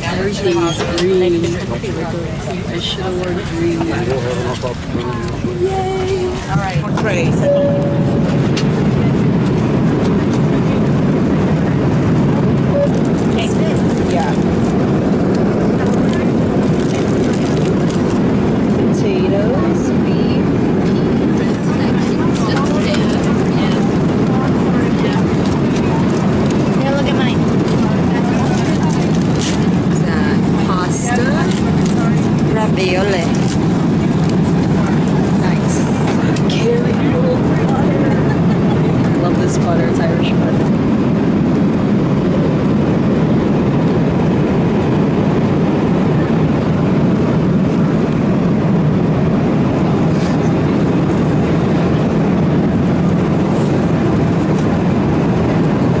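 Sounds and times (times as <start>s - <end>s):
airliner cabin engine rush: 0.0s - 56.0s.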